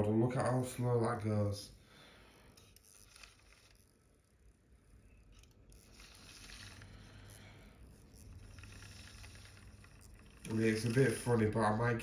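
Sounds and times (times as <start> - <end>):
model train motor humming: 2.6 - 12.0.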